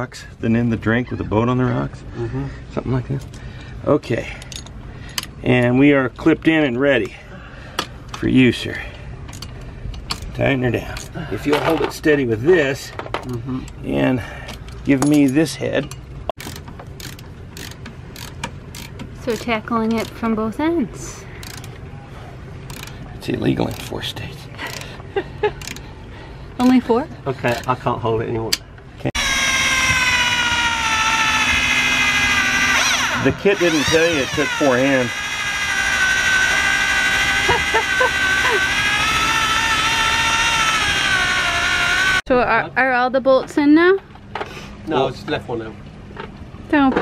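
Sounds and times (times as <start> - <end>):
ratchet wrench clicking: 16.4 - 20.2, 21.4 - 21.8, 22.7 - 23.0, 23.7 - 23.9, 25.6 - 25.9
cordless drill whining: 29.2 - 42.3.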